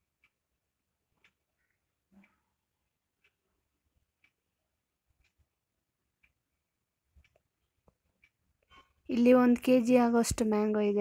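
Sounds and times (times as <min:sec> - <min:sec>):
faint ticks: 0:00.0 - 0:09.7.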